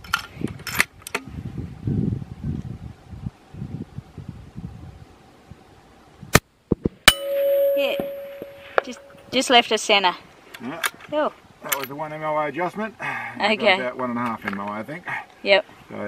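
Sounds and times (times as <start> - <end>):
bullet clanging on steel plate: 7.1 - 9.4.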